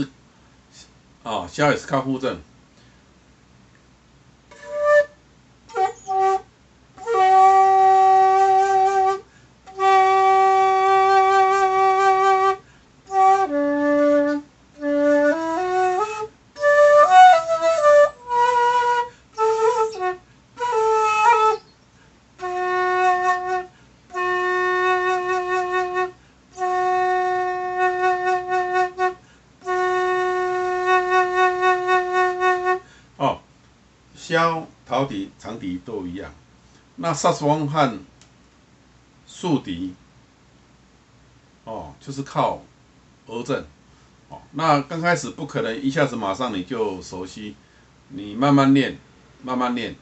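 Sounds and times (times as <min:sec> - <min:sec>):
bamboo flute long held notes: 0:04.5 - 0:21.8, 0:22.4 - 0:32.9.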